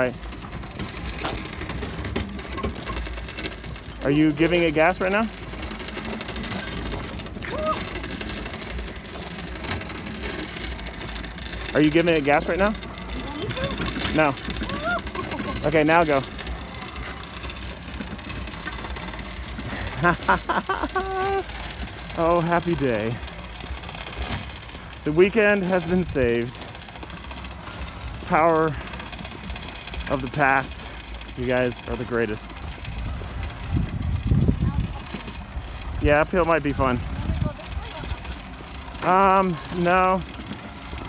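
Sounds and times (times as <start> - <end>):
small motor humming: 0.0 - 41.0
small vehicle rumbling: 0.0 - 41.0
voices or laughter: 14.6 - 15.7, 19.6 - 21.7.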